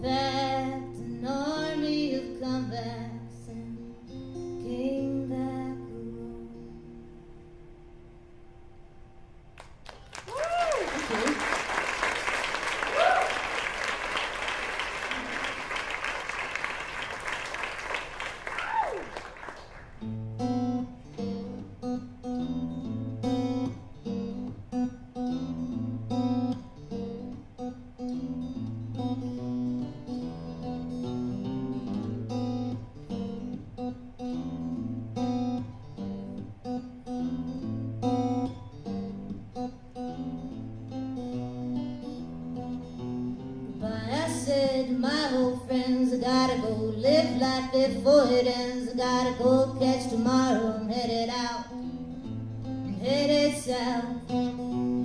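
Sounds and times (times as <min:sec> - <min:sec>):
audience applauding and cheering: 0:09.6 - 0:20.0
whoops: 0:09.9 - 0:11.8, 0:12.7 - 0:13.8, 0:18.3 - 0:19.7
acoustic guitar picking: 0:19.8 - 0:55.0.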